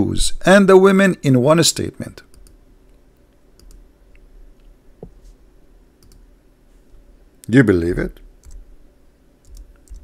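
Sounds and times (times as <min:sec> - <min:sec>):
low steady hum: 0:00.0 - 0:10.0
keyboard and mouse clicks: 0:02.3 - 0:03.0, 0:03.6 - 0:04.7, 0:06.0 - 0:06.3, 0:08.4 - 0:08.7, 0:09.4 - 0:10.0.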